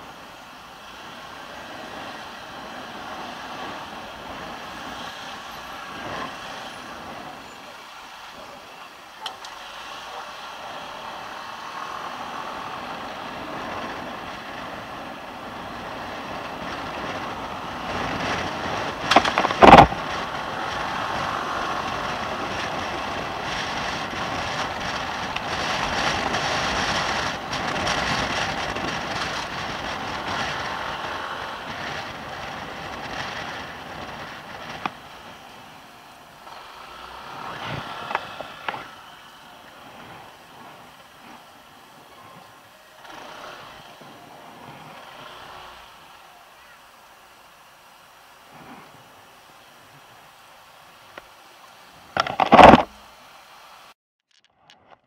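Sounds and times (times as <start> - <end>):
wind and road rush: 0.0 - 55.0.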